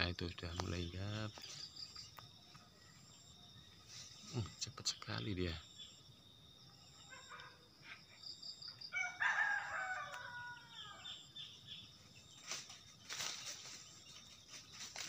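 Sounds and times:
rooster crowing: 8.9s - 11.3s.

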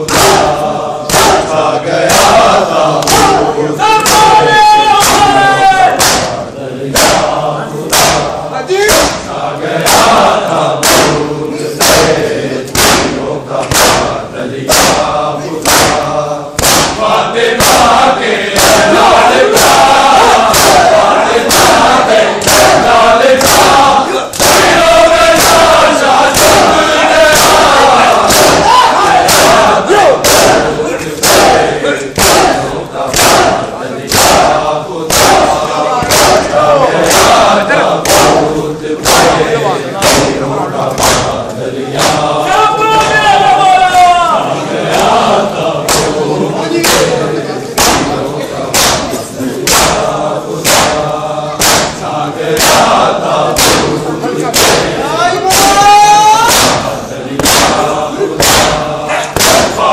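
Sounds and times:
group chanting a lament: 0.0s - 59.9s
hands striking chests: 3.0s - 3.4s, 5.0s - 7.3s, 7.9s - 10.2s, 11.8s - 40.4s, 41.0s - 41.4s, 46.8s - 53.0s, 53.6s - 59.9s.

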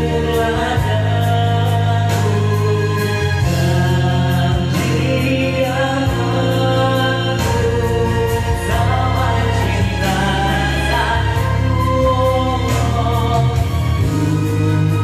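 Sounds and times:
loud backing track: 0.0s - 15.0s
man singing into a microphone: 0.0s - 15.0s.

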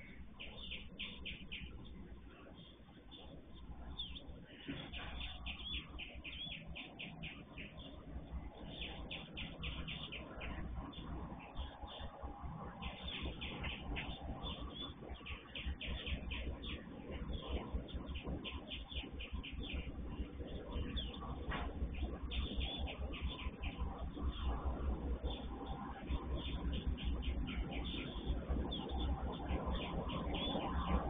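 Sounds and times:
birds chirping: 0.0s - 31.0s.

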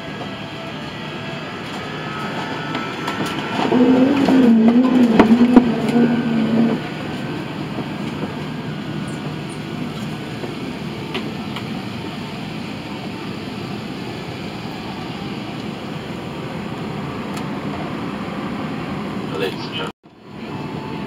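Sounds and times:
wavering pitched sound: 2.0s - 7.1s.

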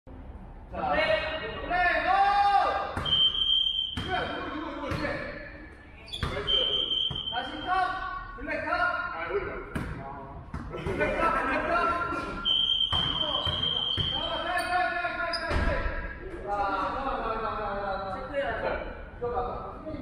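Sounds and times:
high steady squeals: 12.4s - 14.8s.

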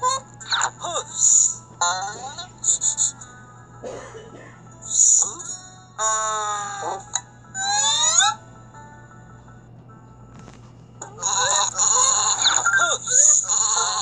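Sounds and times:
cartoon falling tone: 7.6s - 8.4s.

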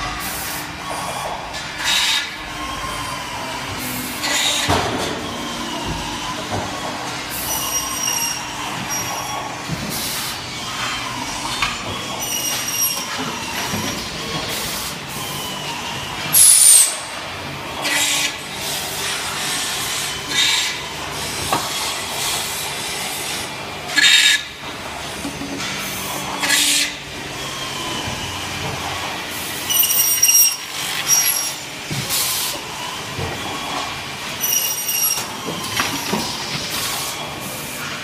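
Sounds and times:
machining centre running: 0.0s - 38.0s.

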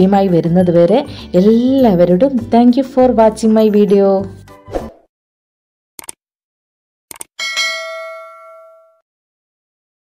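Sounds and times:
notification bell ding: 7.4s - 9.0s.

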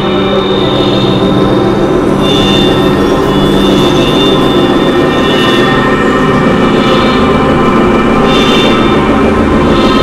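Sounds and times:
high synth tone: 0.0s - 10.0s
synthesizer drone music: 0.0s - 10.0s.

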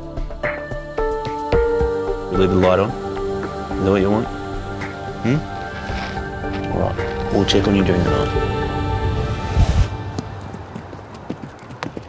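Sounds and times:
horse hoofbeats cantering: 10.0s - 12.0s.

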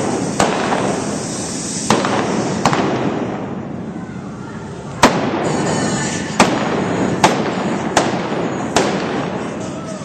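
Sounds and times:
revolver gunshots: 0.0s - 1.2s, 1.9s - 3.5s, 5.0s - 5.6s, 6.3s - 9.5s.

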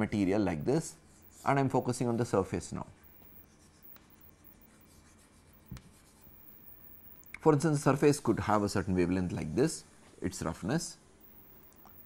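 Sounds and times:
chalk scratching on chalkboard: 1.1s - 2.4s, 3.0s - 7.3s.

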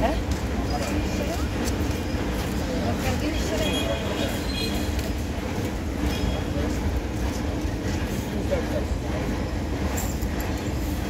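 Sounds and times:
people's voices: 0.0s - 10.5s
low rumble of rail traffic: 0.0s - 11.0s.

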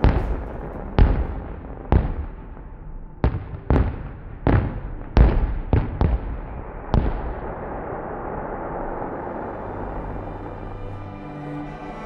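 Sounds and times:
fireworks bangs with echo: 0.0s - 9.8s.

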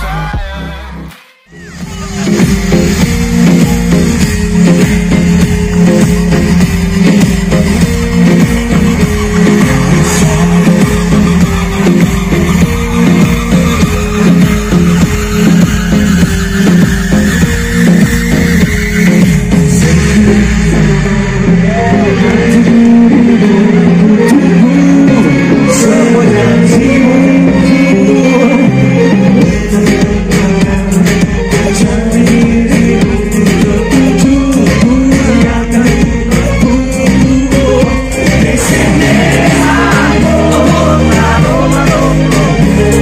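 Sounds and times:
live rock band playing: 1.6s - 43.0s.

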